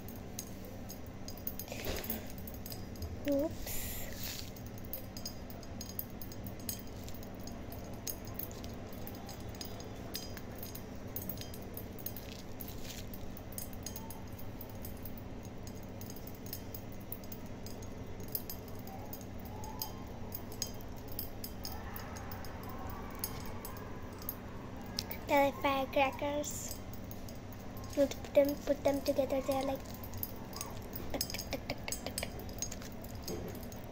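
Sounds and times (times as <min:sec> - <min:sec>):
popping candy crackling: 0:00.0 - 0:33.9.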